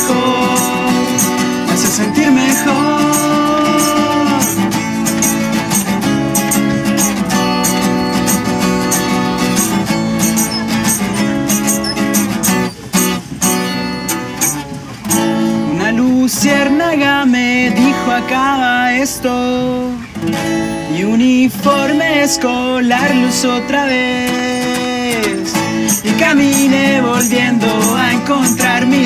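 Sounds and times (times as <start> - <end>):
person singing: 0.0 - 5.4, 21.0 - 29.0
acoustic guitars strumming: 0.0 - 29.0.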